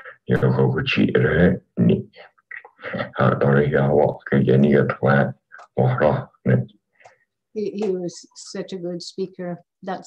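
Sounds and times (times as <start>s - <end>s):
man speaking: 0.0s - 6.8s.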